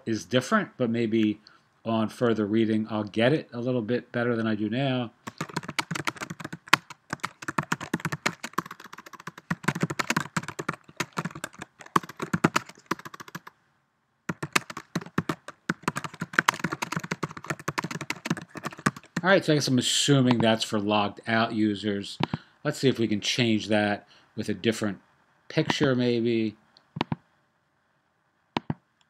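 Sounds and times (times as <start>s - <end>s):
computer keyboard typing: 5.2s - 13.5s, 14.3s - 19.3s.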